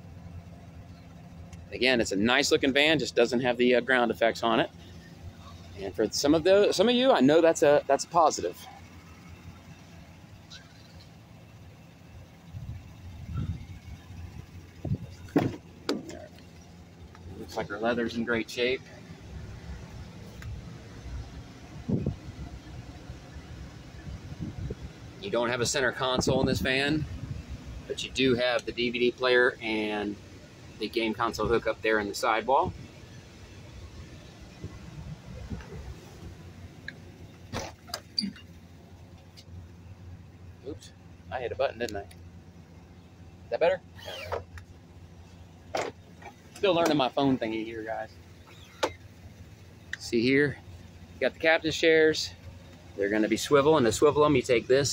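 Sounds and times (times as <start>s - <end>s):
van engine humming: 0.0s - 54.9s
car door clicks and knocks: 15.3s - 16.2s.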